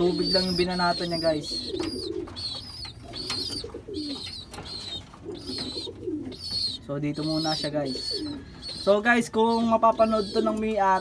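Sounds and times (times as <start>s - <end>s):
pigeons cooing: 0.0s - 11.0s
thin high chirping: 0.0s - 11.0s.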